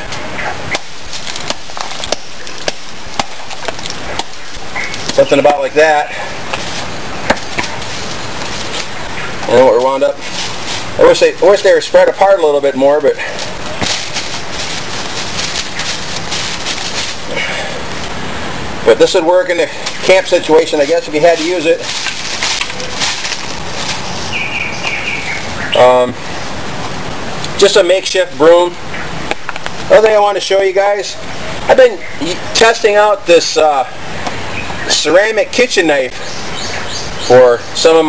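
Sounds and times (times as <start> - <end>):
broom bristles rustling: 0.0 - 38.0
steady background hiss: 0.0 - 38.0
bird calling high notes: 24.0 - 26.1.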